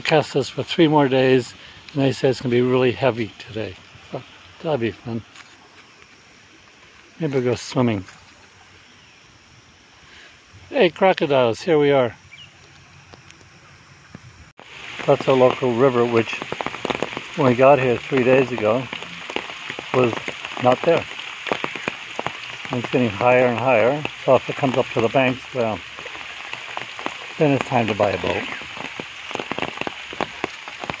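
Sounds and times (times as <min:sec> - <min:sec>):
rain hissing on water: 0:00.0 - 0:31.0
faint raindrop ticks: 0:01.2 - 0:08.5, 0:12.6 - 0:14.2, 0:14.8 - 0:31.0.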